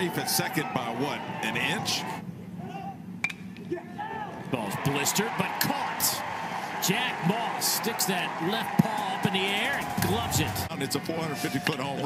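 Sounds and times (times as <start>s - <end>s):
ballpark crowd ambience: 0.0s - 12.0s.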